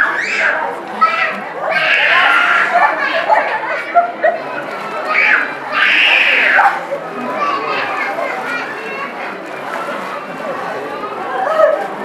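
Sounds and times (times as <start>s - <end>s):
chatter of voices: 0.0s - 12.0s.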